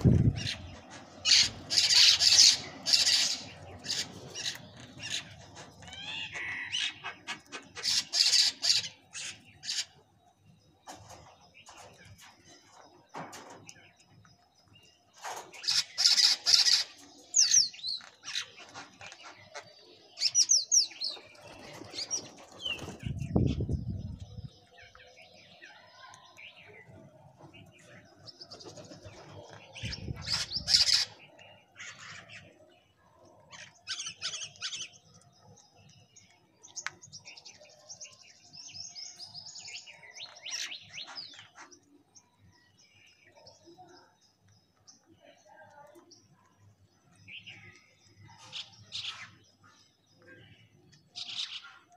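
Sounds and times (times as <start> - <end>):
small birds chirping: 0.0 - 51.9.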